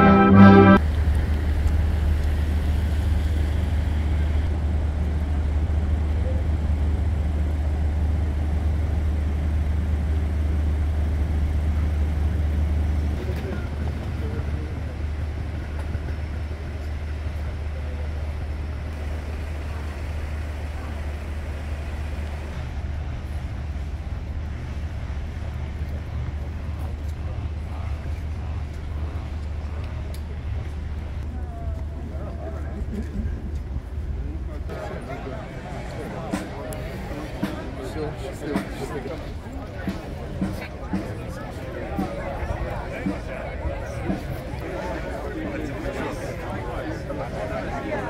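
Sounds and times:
steady low street rumble: 0.0 - 48.0
faint voices of people: 4.2 - 48.0.

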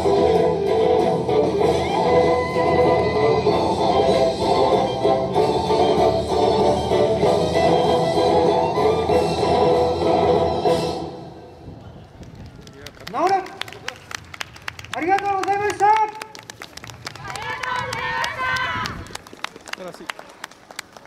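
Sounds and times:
dance music: 0.0 - 11.3
audience clapping: 12.2 - 21.0.

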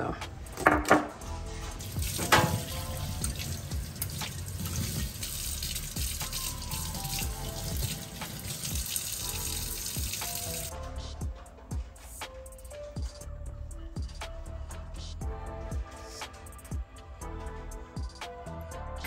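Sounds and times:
tap water running into sink: 1.8 - 10.7.

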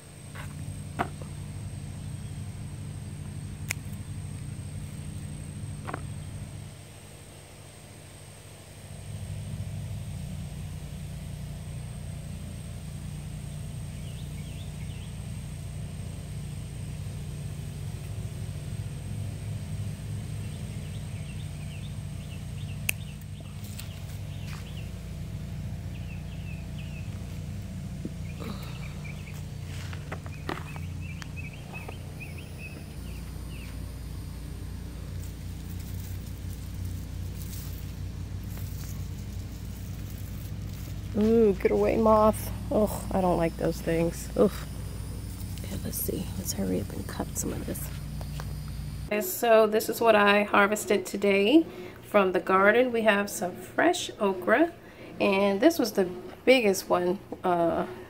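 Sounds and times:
birds chirping: 0.0 - 8.4, 10.8 - 58.0
steady low rumble: 0.0 - 58.0
pruning shears snipping: 3.6 - 4.5, 22.8 - 24.8.

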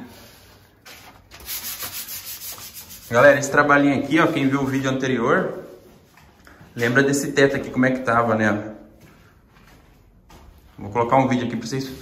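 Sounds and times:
sandpaper rasping on wall: 1.3 - 3.6.

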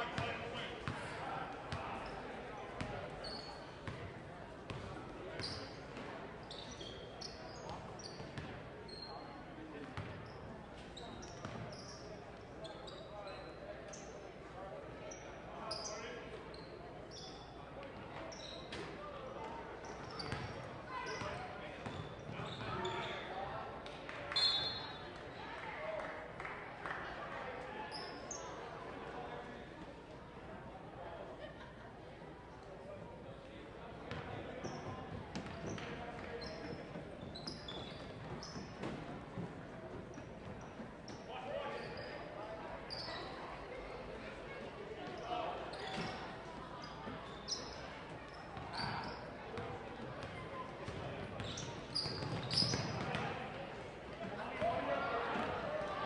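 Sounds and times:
sneaker squeaks: 3.2 - 4.0, 4.7 - 9.3, 9.9 - 14.2, 15.1 - 17.6, 18.2 - 19.0, 19.8 - 23.4, 24.3 - 25.0, 27.9 - 28.6, 34.1 - 39.1, 40.0 - 43.5, 45.0 - 49.6, 50.2 - 53.3.

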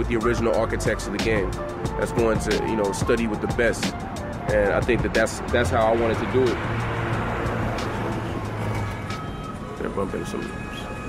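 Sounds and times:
faint music: 0.0 - 11.0
street noise: 0.0 - 11.0
engine running with low hum: 5.1 - 11.0.

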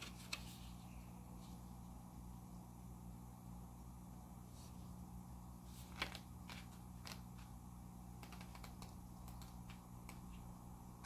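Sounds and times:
low steady hum: 0.0 - 11.0
pages being thumbed through: 5.7 - 7.5.

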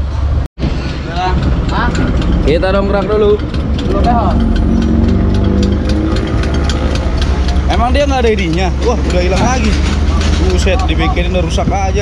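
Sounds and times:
diesel engine idling: 0.2 - 12.0
faint regular ticking: 1.4 - 12.0.

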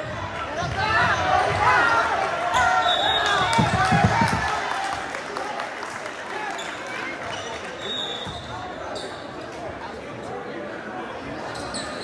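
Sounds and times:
spectators' voices and shouts: 0.0 - 12.0.

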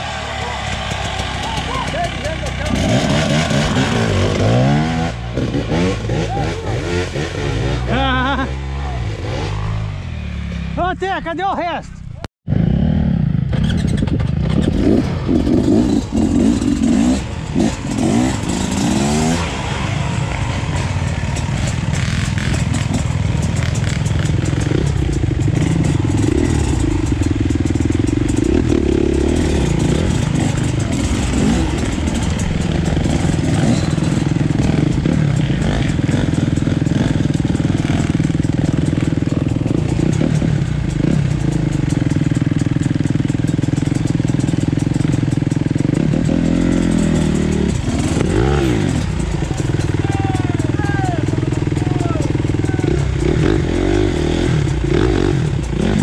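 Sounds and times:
dirt bike engine running: 0.0 - 56.0.

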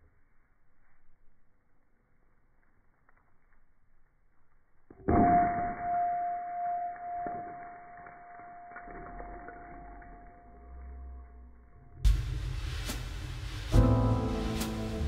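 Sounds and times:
steady ringing tone: 5.1 - 12.0
slowed hammer hit on rock: 12.0 - 15.0.

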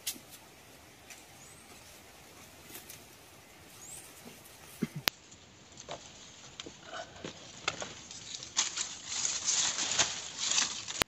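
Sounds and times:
palm fronds rustling: 0.0 - 11.0
bamboo floor creaking and knocking: 5.8 - 8.8.

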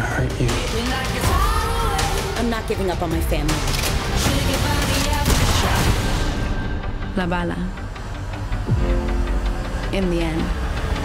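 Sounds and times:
trailer score music: 0.0 - 11.0.

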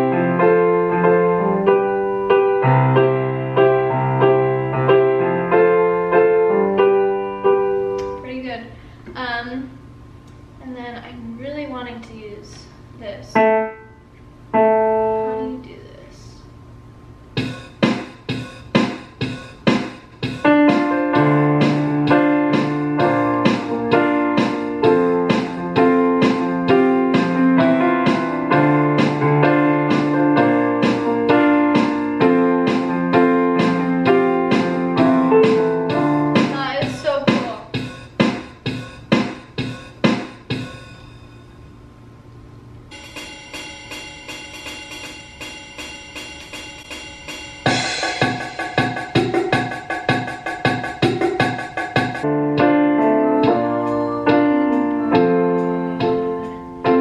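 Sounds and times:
digital piano playing chords: 0.0 - 8.4, 13.2 - 15.9, 17.3 - 41.6, 42.9 - 57.0.

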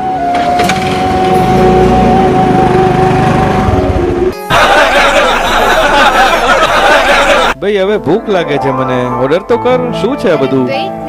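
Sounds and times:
scooter engine pulling away: 0.0 - 4.4.

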